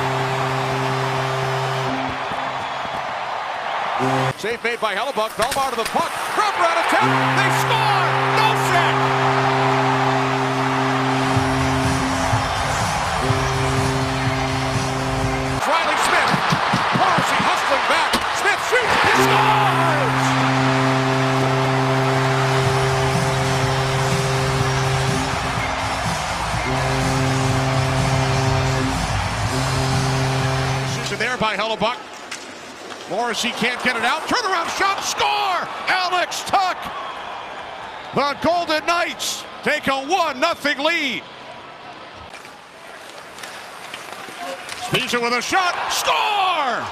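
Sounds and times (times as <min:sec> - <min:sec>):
goal horn blasts: 0:00.0 - 0:04.6, 0:06.4 - 0:31.6
crowd cheering: 0:00.0 - 0:46.9.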